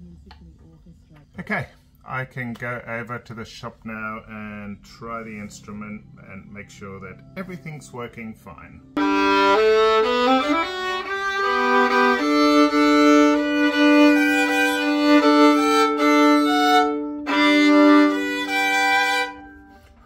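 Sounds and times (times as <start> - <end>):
solo violin bowed: 9.0 - 20.0.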